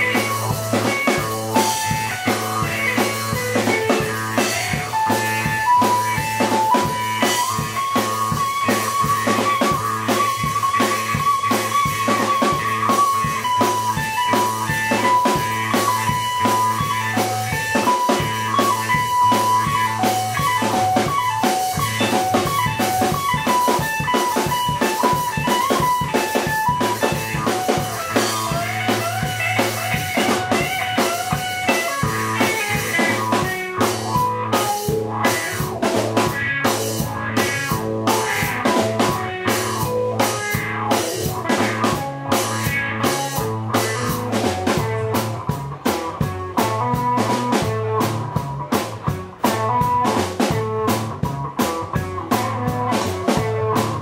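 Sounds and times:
drum kit: 0.0s - 54.0s
electric guitar blues lead: 0.0s - 54.0s.

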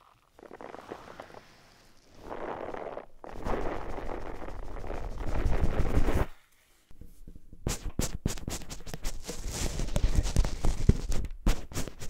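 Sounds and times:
gloved fingers rubbing microphone: 0.4s - 12.0s.

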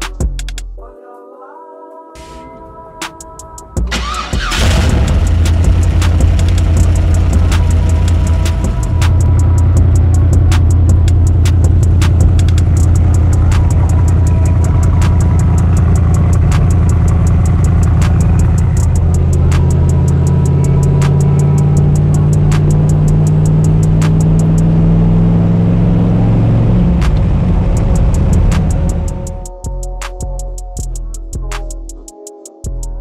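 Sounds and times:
car engine starting and idling: 3.4s - 29.5s.

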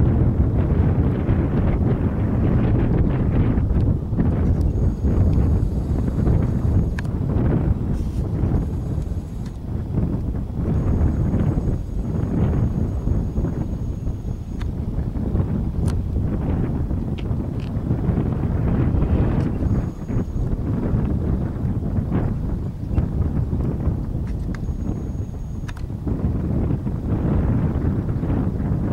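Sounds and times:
wind buffeting microphone: 0.0s - 28.9s.

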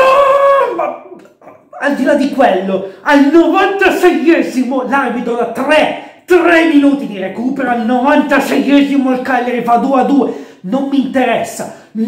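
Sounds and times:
man's high-pitched vocal cry: 0.0s - 2.1s
person speaking: 0.0s - 12.0s.

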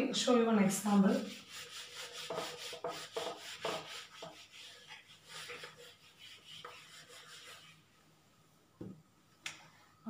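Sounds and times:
eraser wiping whiteboard: 0.8s - 7.9s.

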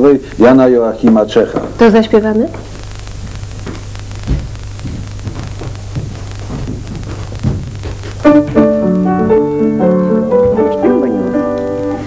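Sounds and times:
small knocks: 3.6s - 8.7s
upright piano playing: 8.2s - 12.0s.

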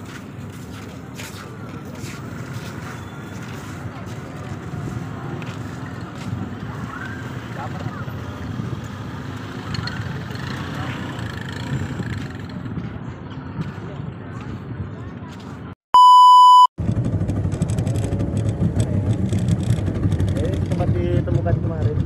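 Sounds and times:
outdoor background noise: 0.0s - 15.8s, 16.8s - 22.0s
crowd chatter: 0.7s - 8.8s, 9.7s - 15.8s.

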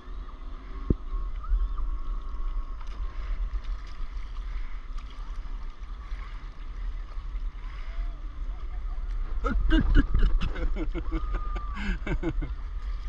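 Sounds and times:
wind rumble on microphone: 0.0s - 13.0s
paddle dipping in water: 0.6s - 11.4s, 12.2s - 13.0s.

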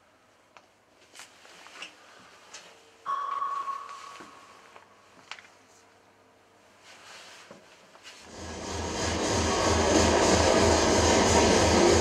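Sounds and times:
ringing high tone: 3.0s - 4.8s.

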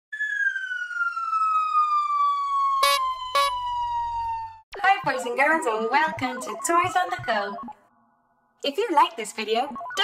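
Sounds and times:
whistle tone gliding down: 2.8s - 3.8s.

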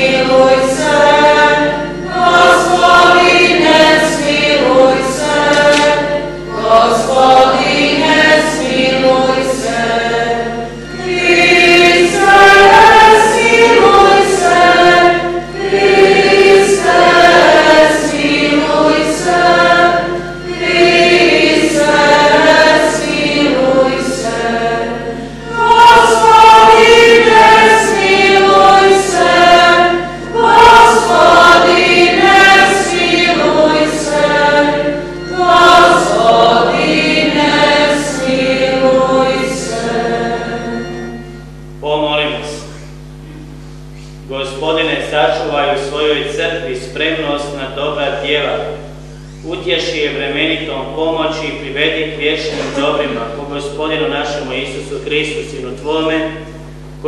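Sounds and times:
church choir singing: 0.0s - 43.2s, 44.2s - 57.0s.

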